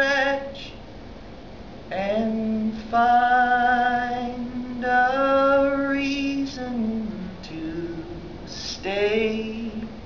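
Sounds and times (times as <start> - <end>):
man singing unaccompanied: 0.0 - 0.8, 1.9 - 10.0.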